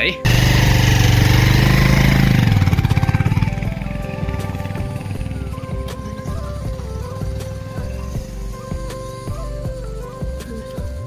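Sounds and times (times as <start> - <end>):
background music with held notes: 0.0 - 0.6, 1.2 - 11.0
motorcycle engine revving: 0.2 - 10.3.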